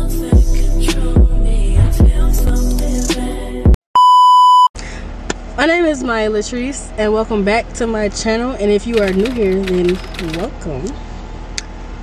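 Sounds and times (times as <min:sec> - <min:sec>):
music with a beat: 0:00.0 - 0:03.8
electronic beep: 0:04.0 - 0:04.7
low background hum: 0:04.8 - 0:12.0.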